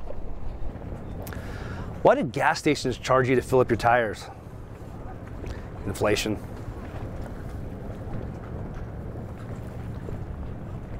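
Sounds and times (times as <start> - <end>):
low outdoor rumble: 0.0 - 10.9.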